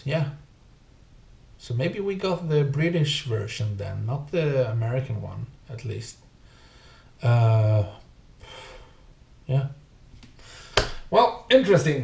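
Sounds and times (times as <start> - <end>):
man breathing in: 6.4 - 7.2, 8.4 - 9.2, 10.4 - 11.1.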